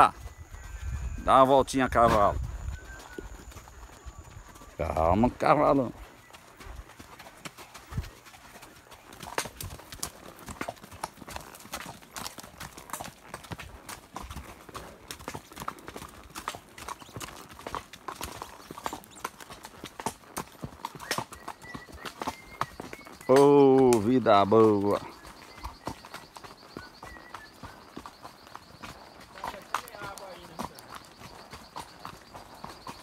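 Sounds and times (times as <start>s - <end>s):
horse hooves clip-clopping on dirt: 0.0s - 33.0s.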